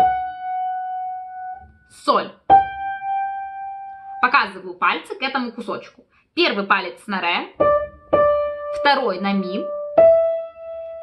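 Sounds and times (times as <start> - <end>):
piano note ringing: 0.0 - 1.9, 2.5 - 4.3, 7.6 - 11.0.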